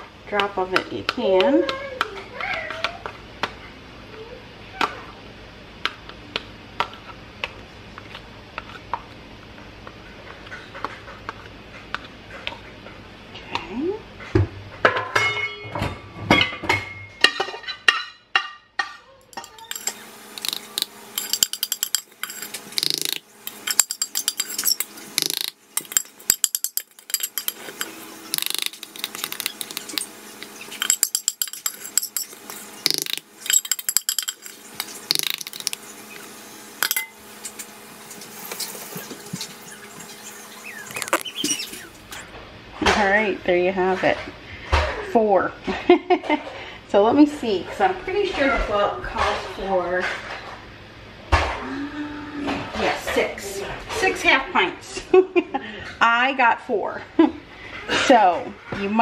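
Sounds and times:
spoon scraping metal pot: 19.3s - 37.6s.

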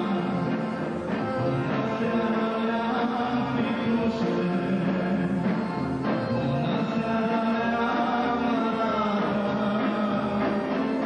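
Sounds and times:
band accompaniment: 0.0s - 11.0s
man singing into a microphone: 0.0s - 11.0s.

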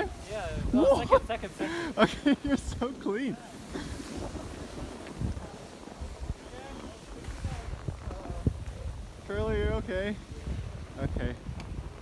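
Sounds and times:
skis sliding on snow: 0.0s - 12.0s
wind rumbling on microphone: 0.0s - 12.0s.

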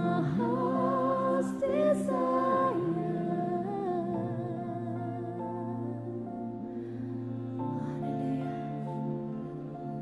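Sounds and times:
live worship music chords: 0.0s - 10.0s
wordless humming vocal: 0.0s - 10.0s.

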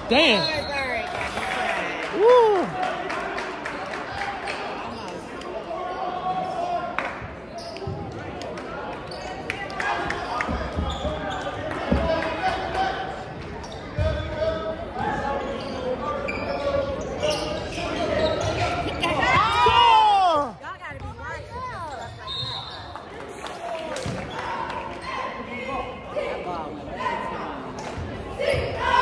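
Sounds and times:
murmur of spectators: 0.0s - 29.0s.

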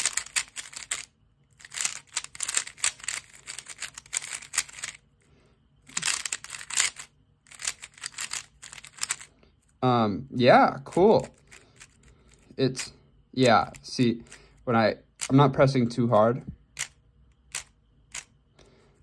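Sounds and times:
speed cube layers clicking: 0.0s - 5.0s, 5.9s - 9.3s, 16.8s - 18.3s.

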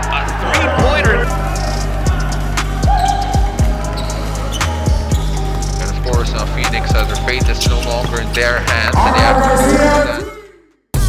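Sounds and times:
background music with bass line: 0.0s - 10.3s.

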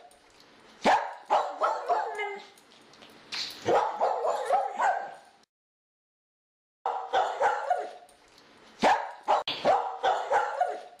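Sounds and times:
dog barking: 0.8s - 2.5s, 3.6s - 5.2s, 6.8s - 8.1s, 8.8s - 11.0s.

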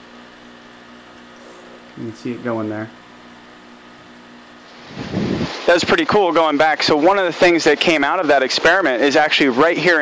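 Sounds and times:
small electric motor humming: 0.0s - 5.5s.

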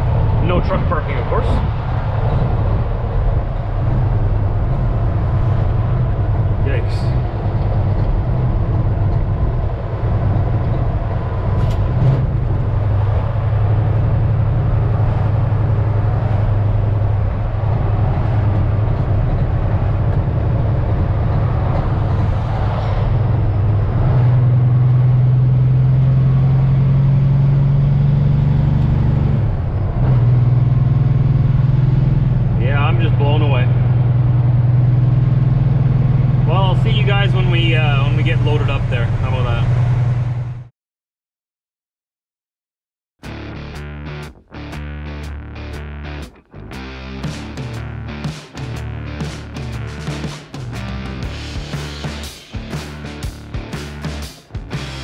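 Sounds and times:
truck diesel engine drone: 0.0s - 40.7s, 43.2s - 55.0s.

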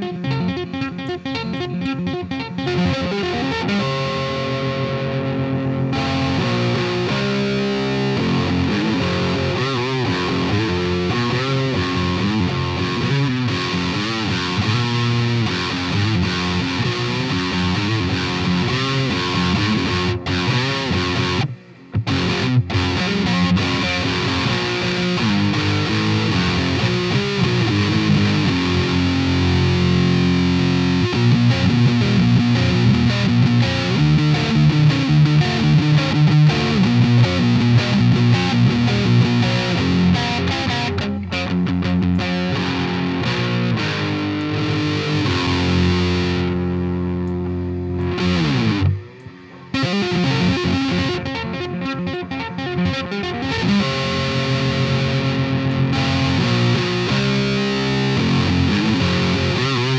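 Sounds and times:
distorted electric guitar riff: 0.0s - 59.9s.

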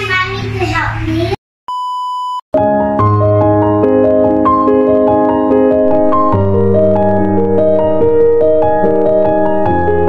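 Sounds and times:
child's voice: 0.0s - 1.4s
steady electronic beep: 1.7s - 2.4s
keyboard music: 2.6s - 10.0s.

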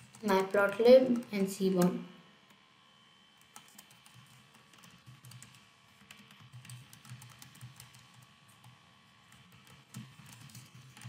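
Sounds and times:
faint computer keyboard typing: 0.0s - 2.6s, 3.4s - 11.0s.

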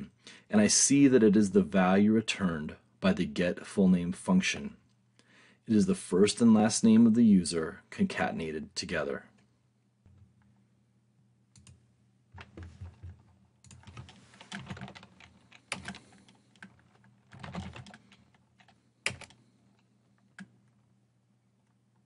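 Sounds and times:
computer keyboard typing: 11.6s - 11.8s, 12.4s - 19.4s.

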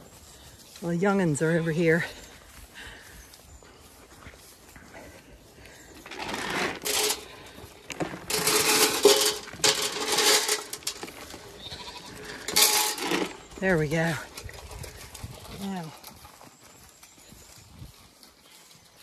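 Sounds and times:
pellets rattling into metal trough: 6.0s - 14.2s
sheep bleating: 11.5s - 12.5s.

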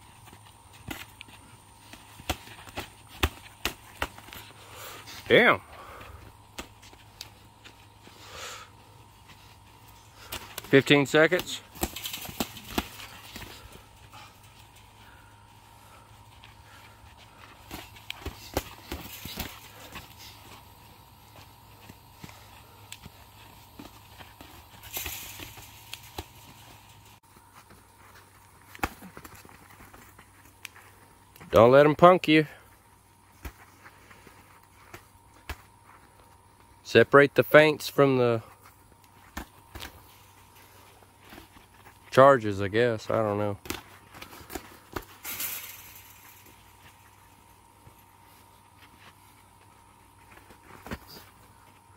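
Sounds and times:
feet shuffling on dirt: 0.0s - 31.8s.

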